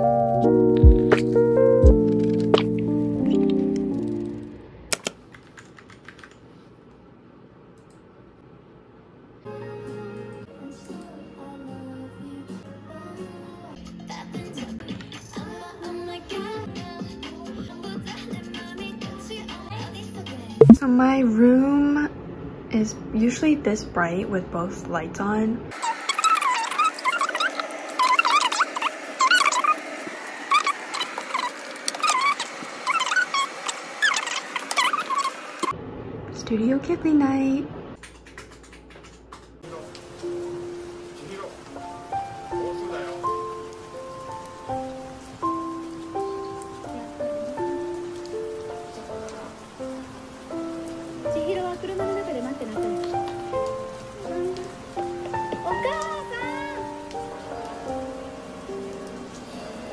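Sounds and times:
computer keyboard typing: 4.9s - 6.4s.

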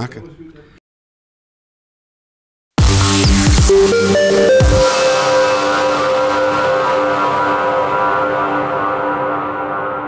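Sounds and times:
electronic jingle ringing chord: 2.8s - 10.0s.

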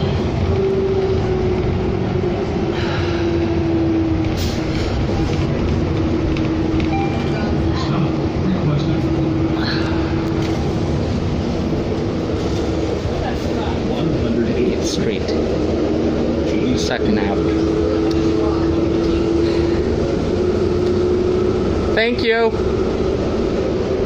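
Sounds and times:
bus engine and road drone: 0.0s - 24.0s.

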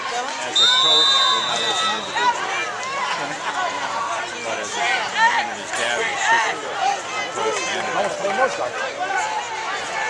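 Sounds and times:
crowd chattering and calling out: 0.0s - 10.0s
referee's whistle: 0.5s - 2.4s.

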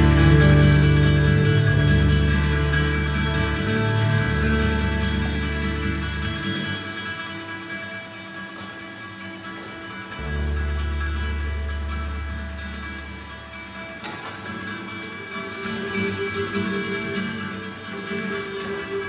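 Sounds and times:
deep bass note: 0.0s - 5.6s
acoustic guitars sustained chords: 0.0s - 19.0s.

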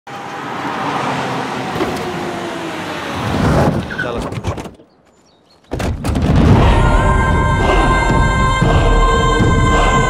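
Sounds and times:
cars driving: 0.1s - 4.2s.

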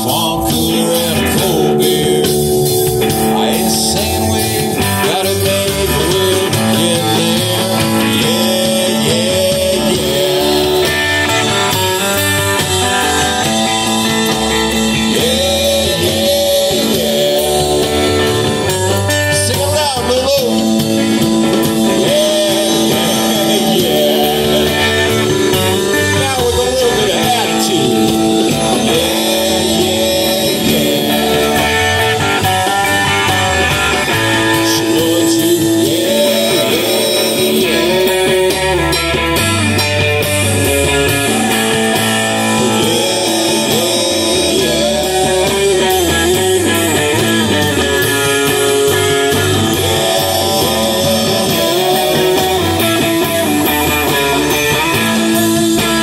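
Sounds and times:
bass guitar: 0.0s - 56.0s
drums: 0.0s - 56.0s
electric guitar lead with bent notes: 0.0s - 56.0s.

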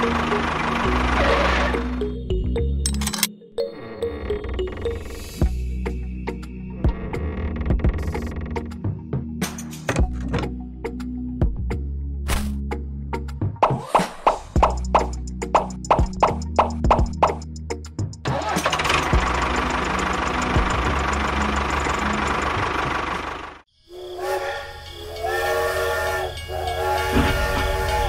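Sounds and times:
music with plucked beat: 14.6s - 18.2s
steam train whistle chord: 23.9s - 28.0s.

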